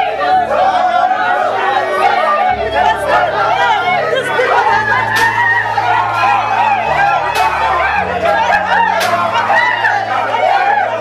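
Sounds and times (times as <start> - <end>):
group singing and shouting: 0.0 - 11.0
music with steady bass line: 0.0 - 11.0.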